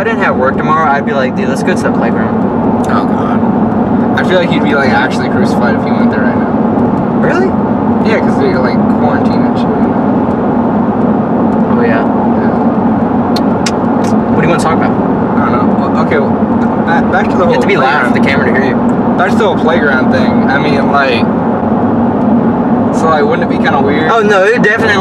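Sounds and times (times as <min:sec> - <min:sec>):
car road and engine drone: 0:00.0 - 0:25.0.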